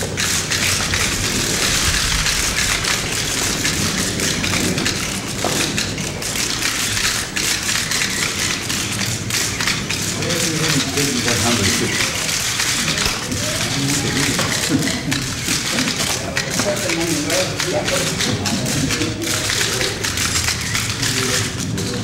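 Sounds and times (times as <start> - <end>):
camera shutters clicking: 0.2 - 22.0.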